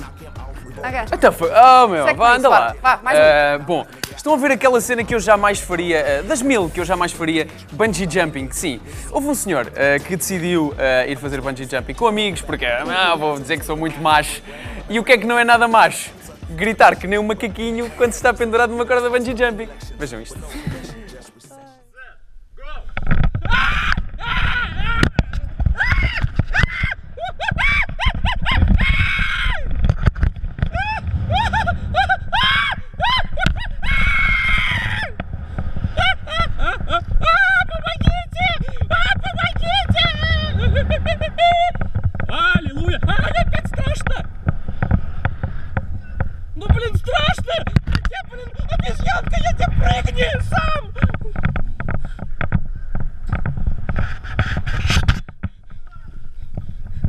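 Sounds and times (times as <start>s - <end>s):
wind rumble on microphone: 22.8s - 57.0s
man screaming and yelling: 30.8s - 35.2s.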